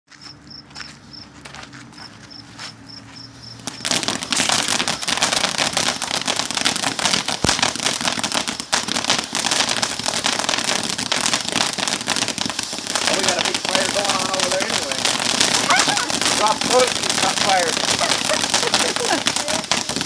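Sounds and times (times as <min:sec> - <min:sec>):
firework fountain crackling and hissing: 0:03.5 - 0:20.0
sharp firework pop: 0:07.4 - 0:07.7.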